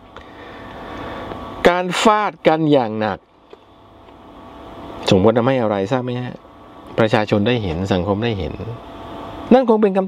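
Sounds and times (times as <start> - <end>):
man speaking: 1.6 - 3.2, 5.0 - 6.4, 7.0 - 8.8.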